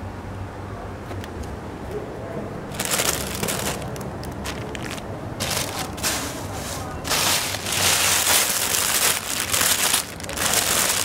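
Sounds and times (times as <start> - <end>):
plastic bag rustling: 2.7 - 11.0.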